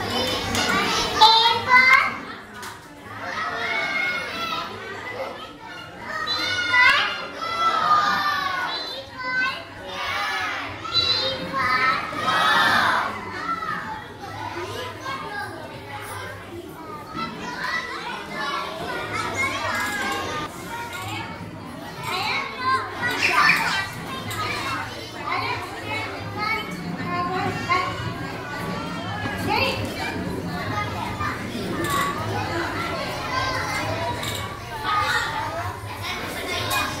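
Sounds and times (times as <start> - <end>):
children chattering and calling out: 0.0 - 37.0.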